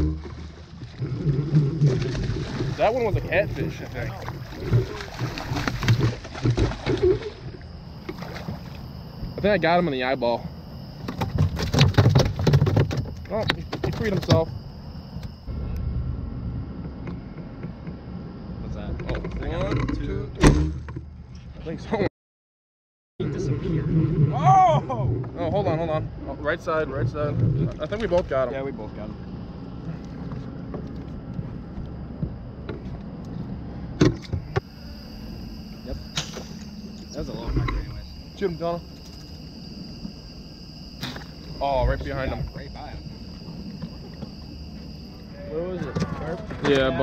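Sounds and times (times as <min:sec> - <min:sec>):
knocks and clatters on boat: 0:00.0 - 0:08.8, 0:11.0 - 0:14.6, 0:16.8 - 0:18.0
fish thrashing and splashing water: 0:00.0 - 0:09.0
steady hum: 0:00.0 - 0:22.0, 0:23.2 - 0:47.0.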